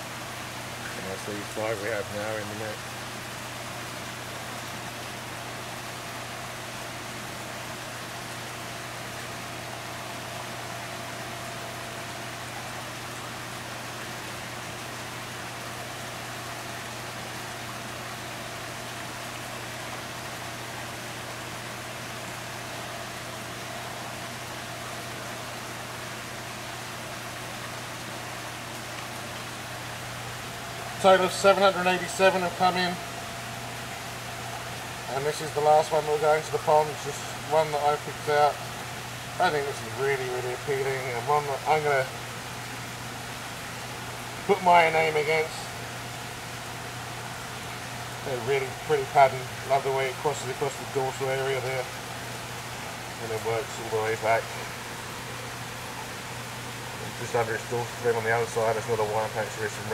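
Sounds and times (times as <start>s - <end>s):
constant low hum: 0.0s - 59.9s
water rushing: 0.0s - 59.9s.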